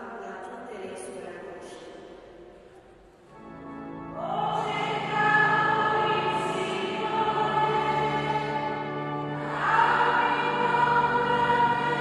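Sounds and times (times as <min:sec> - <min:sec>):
choir singing a hymn: 0:04.1 - 0:12.0.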